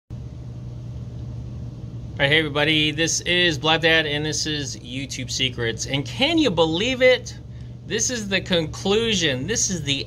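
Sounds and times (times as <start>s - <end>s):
low hum: 0.1s - 10.0s.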